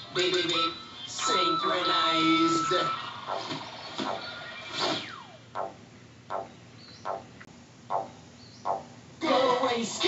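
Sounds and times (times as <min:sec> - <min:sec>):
soft evenly spaced hits: 0:03.2 - 0:04.3, 0:05.0 - 0:09.5.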